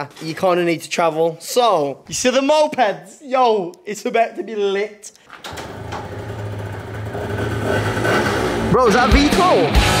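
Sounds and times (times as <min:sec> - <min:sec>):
moped engine running: 0:05.7 - 0:09.3.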